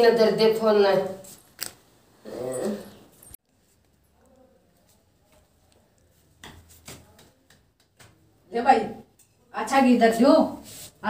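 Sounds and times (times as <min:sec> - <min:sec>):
person moaning: 0:02.2 - 0:03.0.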